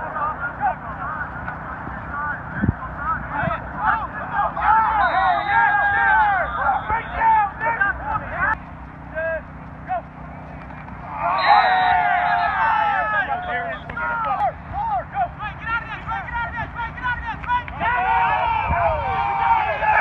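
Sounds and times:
many voices shouting: 0:03.8 - 0:07.8, 0:11.0 - 0:20.0.

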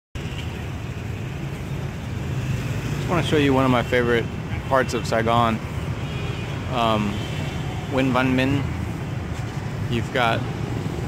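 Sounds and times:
city street traffic rumble: 0:00.2 - 0:11.0.

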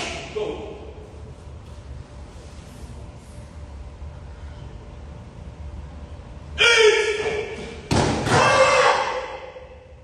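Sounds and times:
loud kiai shout: 0:06.6 - 0:09.9.

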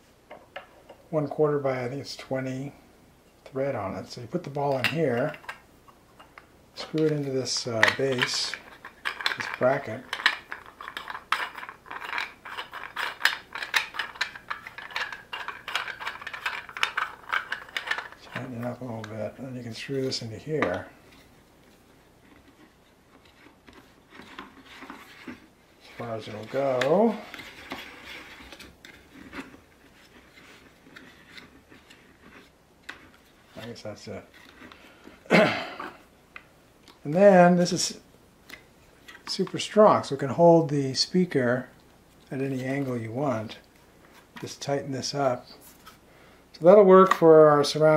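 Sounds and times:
clicks and rattles of bracket: 0:07.8 - 0:18.5
quiet rubbing: 0:15.3 - 0:36.1.

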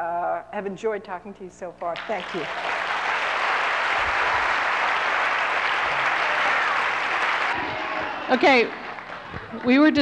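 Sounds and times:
audience applauding: 0:02.0 - 0:10.0.

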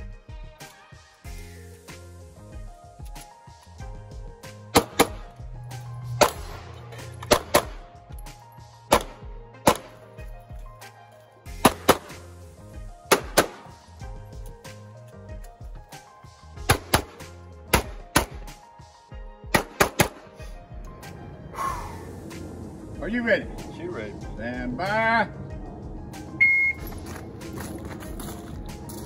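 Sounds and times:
background music: 0:00.0 - 0:29.0
handgun shots: 0:04.7 - 0:05.3, 0:06.2 - 0:06.6, 0:07.2 - 0:07.8, 0:08.9 - 0:10.0, 0:11.6 - 0:12.2, 0:13.1 - 0:13.7, 0:16.7 - 0:18.5, 0:19.5 - 0:20.3.

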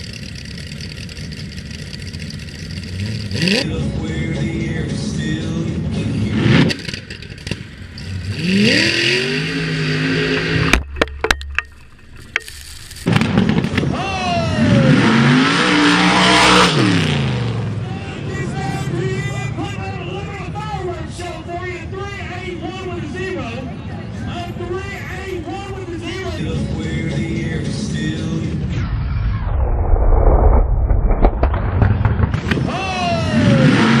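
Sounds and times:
dragster engine revving: 0:00.0 - 0:10.9, 0:11.8 - 0:17.8, 0:32.3 - 0:34.0
dragster engine backfire pops: 0:06.6 - 0:08.4, 0:10.4 - 0:14.0, 0:30.5 - 0:32.8.

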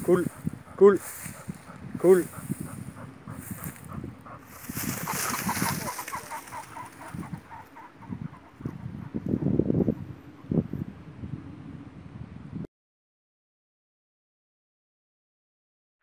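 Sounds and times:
pheasant cackling calls: 0:00.0 - 0:10.5
pheasant wingbeats: 0:03.3 - 0:08.8.

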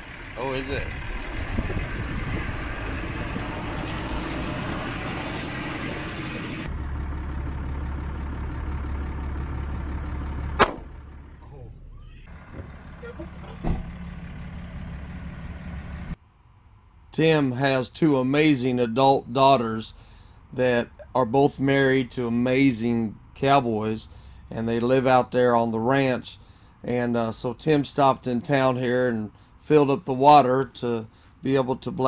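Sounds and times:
vehicle driving noise: 0:00.0 - 0:32.0
handgun shots: 0:10.6 - 0:10.9.

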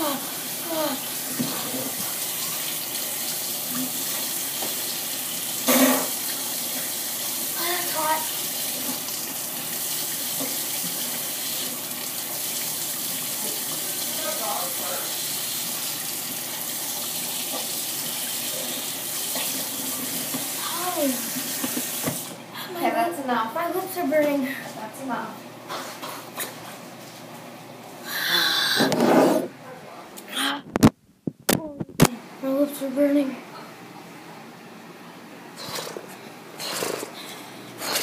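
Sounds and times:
tap running into sink: 0:04.5 - 0:04.9, 0:19.3 - 0:20.6, 0:21.4 - 0:22.3.

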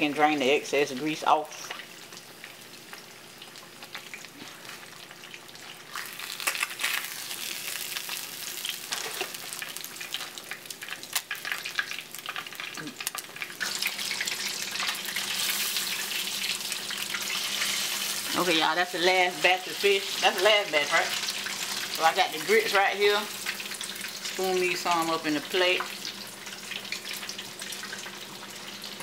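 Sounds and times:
fish deep-frying in hot oil: 0:00.0 - 0:29.0.

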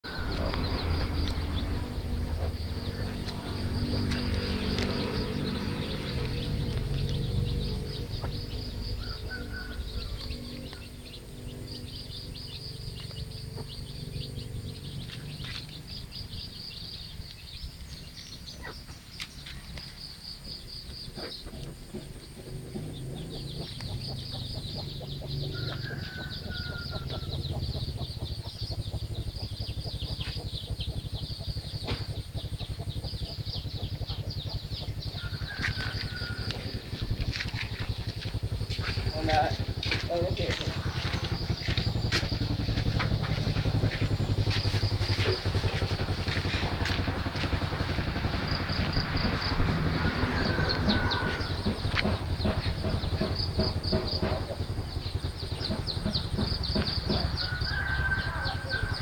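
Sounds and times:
chicks peeping: 0:00.0 - 0:59.0
engine running steadily: 0:00.0 - 0:59.0
low pulsing rumble: 0:00.0 - 0:59.0.

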